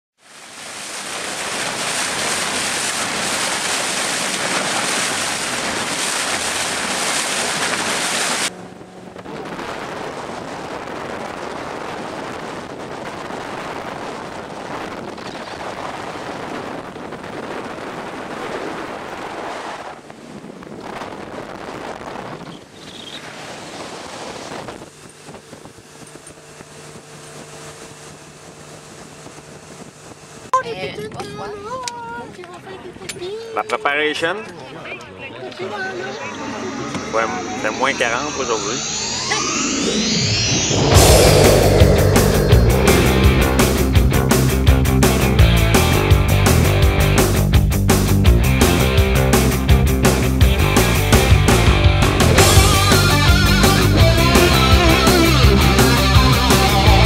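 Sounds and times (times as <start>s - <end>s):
water rushing past boat: 0.2s - 30.5s
wind buffeting microphone: 1.2s - 33.4s, 39.1s - 47.1s
low engine drone: 3.6s - 10.6s, 35.5s - 57.0s.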